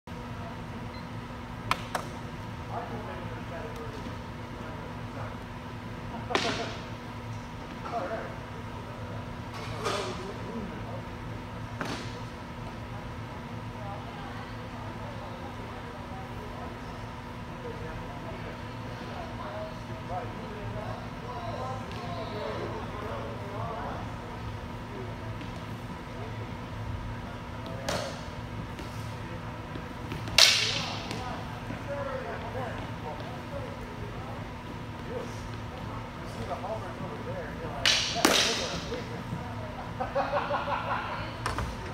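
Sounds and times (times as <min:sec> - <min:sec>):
stick cracks ringing in a hall: 0:30.2 - 0:31.2, 0:37.8 - 0:38.9.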